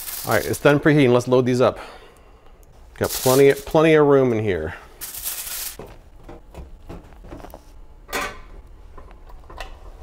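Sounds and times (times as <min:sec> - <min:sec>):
metal baking sheet scraping: 0:03.0 - 0:03.8.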